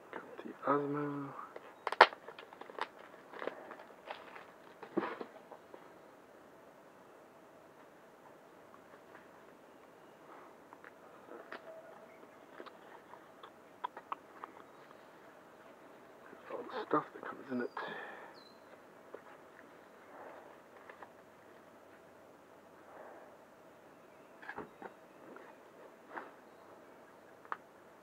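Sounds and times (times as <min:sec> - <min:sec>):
packaging rustling: 0:01.8 - 0:05.0.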